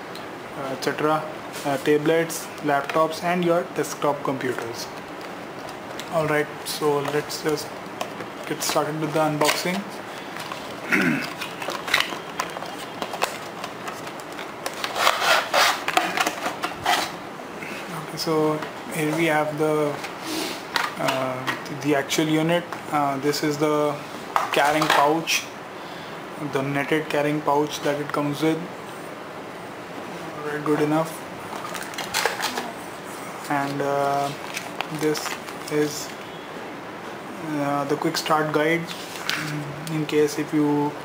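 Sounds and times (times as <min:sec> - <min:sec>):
packaging crackles and clicks: 0:09.4 - 0:17.1, 0:31.5 - 0:32.7, 0:33.6 - 0:36.2.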